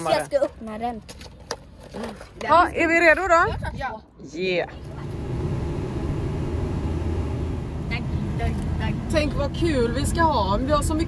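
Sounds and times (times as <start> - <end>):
road noise: 4.6 - 11.0
car engine: 4.7 - 11.0.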